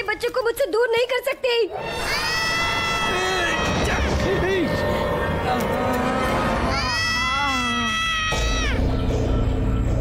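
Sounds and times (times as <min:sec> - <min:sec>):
low rumbling horror music drone: 0:02.8 - 0:10.0.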